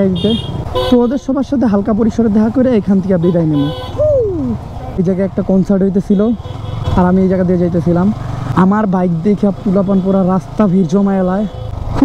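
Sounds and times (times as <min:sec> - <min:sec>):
man talking: 0:00.0 - 0:11.6.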